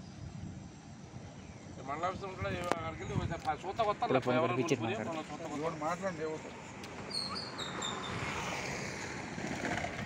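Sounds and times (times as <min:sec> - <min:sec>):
small bird chirping: 0:05.6 - 0:08.2.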